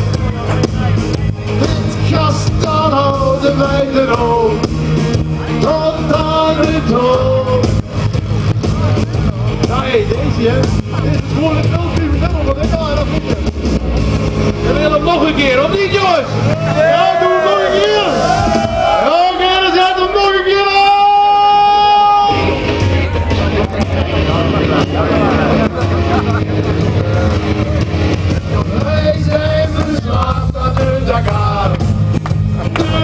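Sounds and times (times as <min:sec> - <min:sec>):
pop song on speakers: 0:00.0 - 0:33.0
men singing through a pa: 0:02.0 - 0:04.6, 0:05.6 - 0:07.6, 0:28.6 - 0:32.0.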